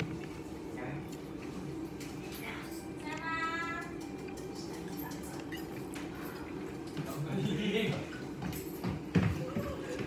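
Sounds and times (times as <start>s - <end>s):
low room hum: 0.0s - 10.0s
chopsticks clicking and tapping: 3.0s - 7.1s.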